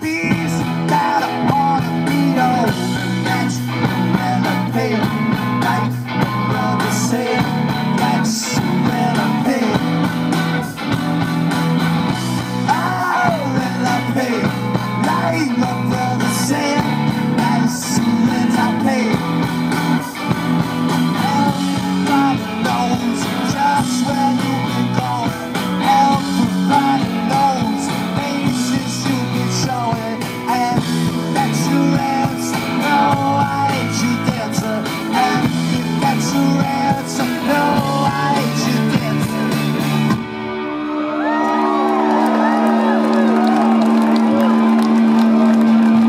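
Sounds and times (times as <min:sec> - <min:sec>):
man singing lead vocal: 0:00.0 - 0:10.9, 0:12.1 - 0:40.2
bass guitar: 0:00.0 - 0:46.0
drums: 0:00.0 - 0:46.0
electric guitars: 0:00.0 - 0:46.0.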